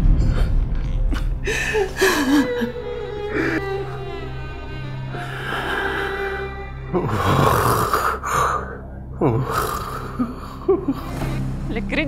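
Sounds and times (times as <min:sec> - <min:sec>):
soft background music: 0:00.0 - 0:12.0
person sobbing: 0:01.1 - 0:03.6.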